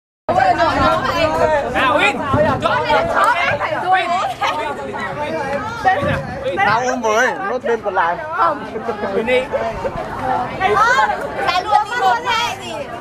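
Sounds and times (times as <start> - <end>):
young people chattering: 0.3 - 13.0.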